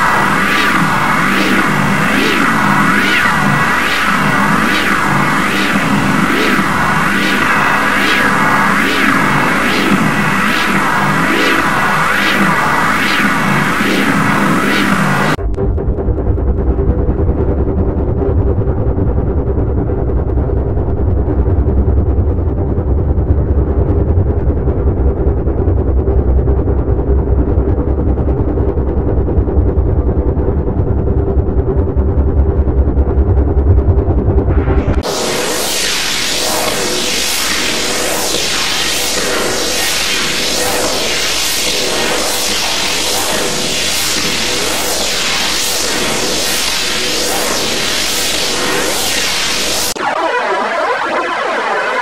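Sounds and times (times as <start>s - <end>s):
sweeping whoosh: 0.0s - 15.9s, 33.2s - 50.2s
distorted noisy wash: 0.0s - 52.0s
steady droning tones: 0.0s - 52.0s
distorted low rattle: 15.4s - 35.6s.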